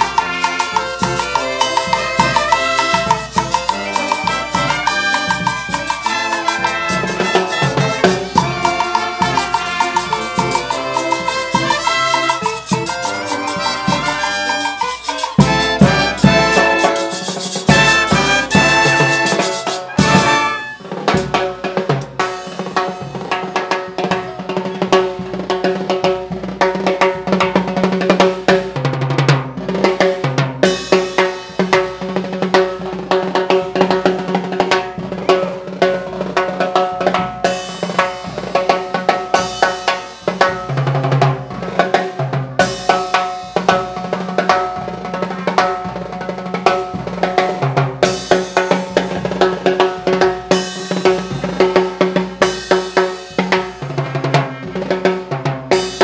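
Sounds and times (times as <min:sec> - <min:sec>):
brass horns holding notes: 0:00.0 - 0:21.2, 0:53.8 - 0:56.0
cowbell: 0:00.0 - 0:28.5, 0:30.6 - 0:56.0
block percussion: 0:00.0 - 0:56.0.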